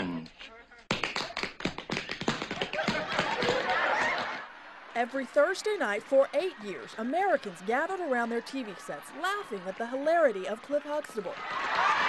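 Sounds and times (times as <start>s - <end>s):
shoes tapping dance footwork: 0.9s - 4.3s
audience applause: 0.9s - 12.0s.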